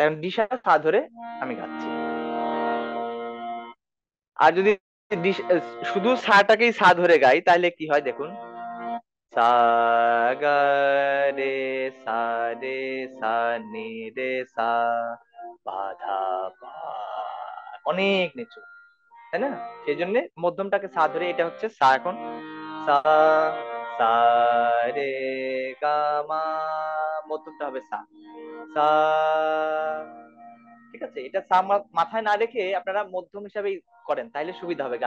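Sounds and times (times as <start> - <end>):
harmonium: 0.7 - 3.8, 4.4 - 33.0, 33.9 - 35.0
man singing held notes: 9.4 - 18.4, 28.8 - 30.1.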